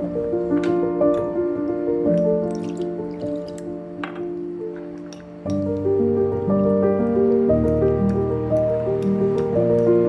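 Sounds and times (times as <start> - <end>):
background music: 0.0 - 10.0
water dripping and splashing: 2.1 - 3.8.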